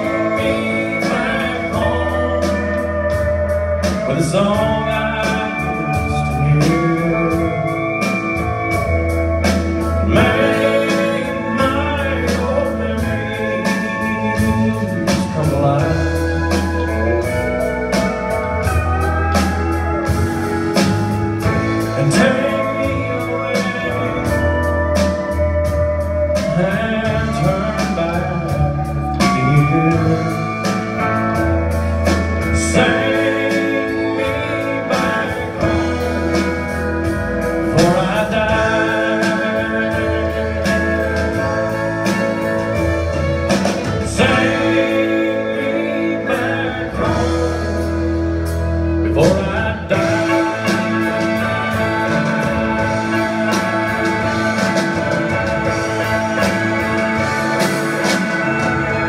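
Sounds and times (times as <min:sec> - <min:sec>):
bass line: 0:00.0 - 0:59.0
country band playing slow song: 0:00.0 - 0:59.0
electric guitars: 0:00.0 - 0:59.0
pedal steel guitar: 0:00.0 - 0:59.0
person singing: 0:00.0 - 0:59.0.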